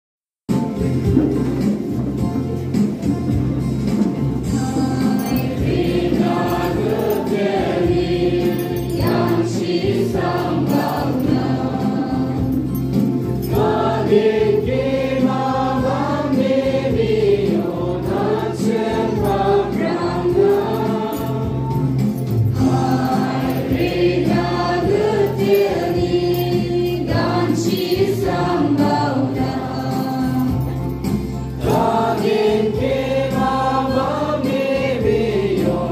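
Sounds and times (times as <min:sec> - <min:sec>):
low musical accompaniment: 0:00.5 - 0:35.9
group of voices singing: 0:04.4 - 0:35.9.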